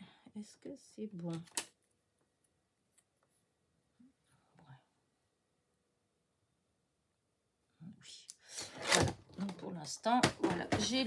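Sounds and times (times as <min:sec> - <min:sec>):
woman speaking: 0:00.0 - 0:01.5, 0:07.8 - 0:11.0.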